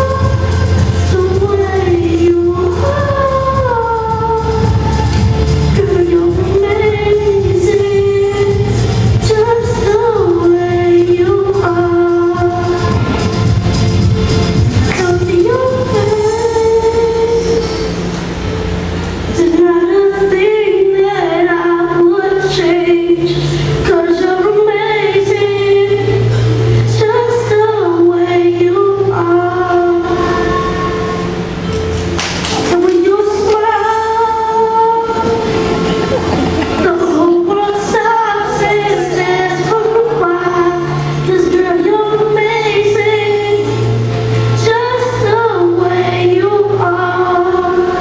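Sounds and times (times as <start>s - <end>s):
child singing into a microphone: 0.0s - 13.3s, 14.7s - 18.0s, 19.3s - 31.4s, 32.6s - 35.9s, 36.5s - 48.0s
backing track: 0.0s - 48.0s
low musical accompaniment: 0.0s - 48.0s.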